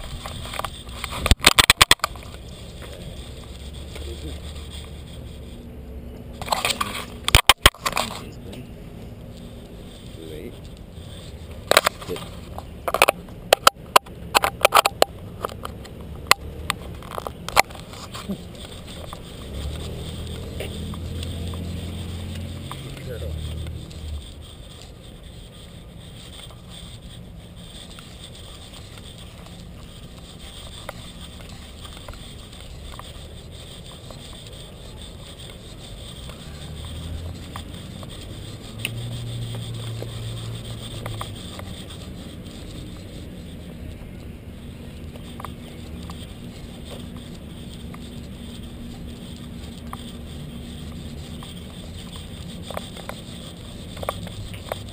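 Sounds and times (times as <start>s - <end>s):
steady rustle: 0.0s - 54.9s
camera handling clicks and knocks: 0.2s - 2.4s, 11.6s - 17.9s.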